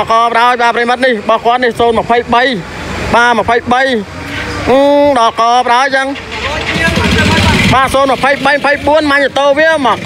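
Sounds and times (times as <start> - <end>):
motorcycle engine running: 6.0 - 10.0.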